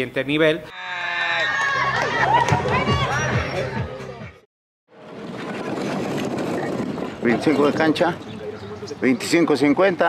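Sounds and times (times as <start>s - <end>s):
children shouting: 0.7s - 3.9s.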